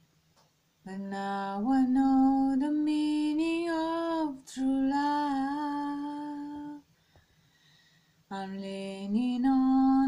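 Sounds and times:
woman singing unaccompanied: 0:00.8 - 0:06.9, 0:08.3 - 0:10.0
quick breath: 0:06.9 - 0:08.2.

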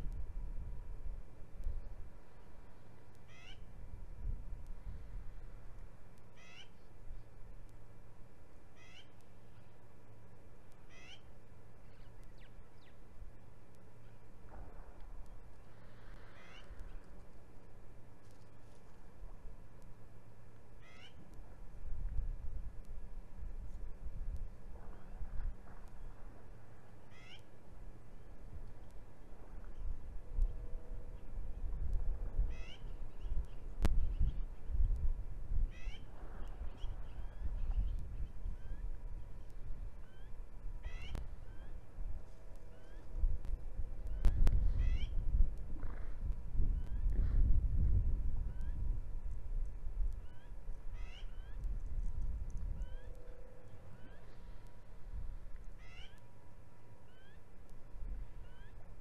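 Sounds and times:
steady low rumble: 0:00.0 - 0:59.0
bird chirps: 0:03.3 - 0:03.6, 0:06.4 - 0:06.9, 0:08.8 - 0:09.8, 0:10.9 - 0:13.0, 0:20.8 - 0:21.2, 0:27.1 - 0:27.5, 0:32.5 - 0:34.6, 0:35.7 - 0:41.8, 0:44.1 - 0:45.2, 0:50.2 - 0:51.6, 0:52.8 - 0:54.6, 0:55.8 - 0:56.3, 0:57.1 - 0:57.4, 0:58.4 - 0:58.8
bird trill: 0:03.3 - 0:03.7, 0:06.4 - 0:06.9, 0:08.8 - 0:09.7, 0:10.9 - 0:13.0, 0:16.3 - 0:17.0, 0:20.8 - 0:21.2, 0:27.1 - 0:27.5, 0:32.5 - 0:34.4, 0:35.7 - 0:36.1, 0:36.7 - 0:41.8, 0:42.7 - 0:43.1, 0:44.1 - 0:45.2, 0:50.2 - 0:51.6, 0:52.8 - 0:54.6, 0:55.8 - 0:56.3, 0:57.1 - 0:57.4, 0:58.4 - 0:58.8.

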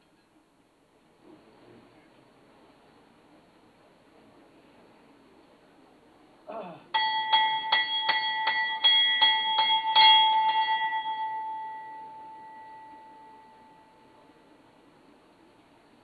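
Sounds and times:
brass bell rung rapidly: 0:07.0 - 0:13.7.

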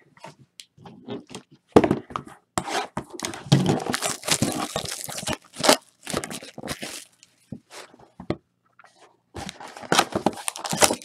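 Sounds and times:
packaging tearing and crinkling: 0:03.7 - 0:07.3, 0:09.9 - 0:11.0
packaging ripping: 0:03.8 - 0:07.2, 0:10.3 - 0:11.0.

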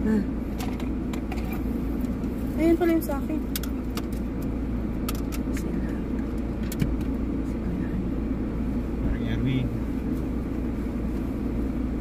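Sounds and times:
car running low rumble: 0:00.0 - 0:12.0.

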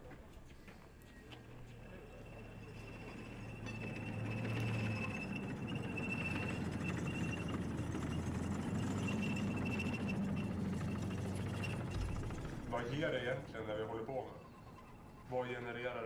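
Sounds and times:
military vehicle engine running: 0:00.0 - 0:16.0
thin whine: 0:01.9 - 0:16.0.

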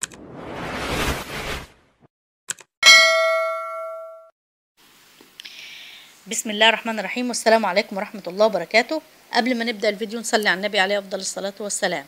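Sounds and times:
bright bell ding: 0:02.8 - 0:04.3.

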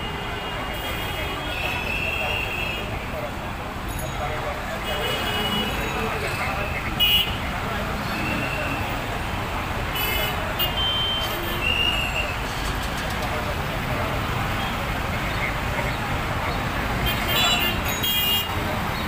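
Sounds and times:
crowd voices: 0:00.0 - 0:19.0.

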